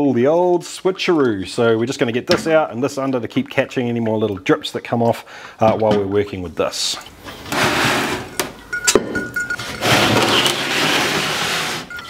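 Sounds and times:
bowls clinking: 0:01.6 - 0:12.0
bowls scraping and rustling: 0:06.8 - 0:12.0.

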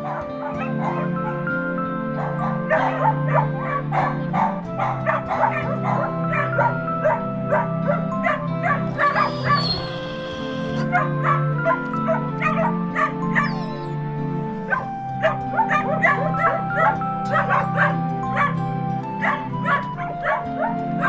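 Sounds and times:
dogs barking and yipping: 0:00.0 - 0:21.0
soft music score: 0:00.0 - 0:21.0.

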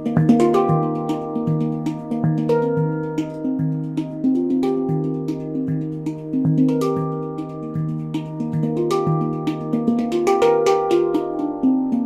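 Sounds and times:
handpan notes played by fingers: 0:00.0 - 0:12.0.

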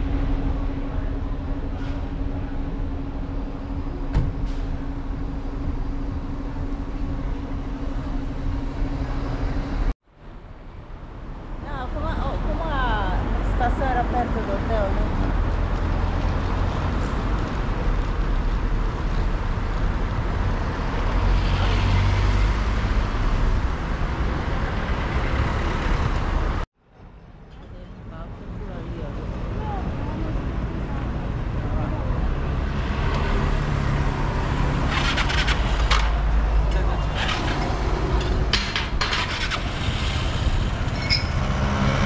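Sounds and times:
cars going by: 0:00.0 - 0:26.7, 0:27.6 - 0:42.0
heavy low traffic rumble: 0:00.0 - 0:42.0.

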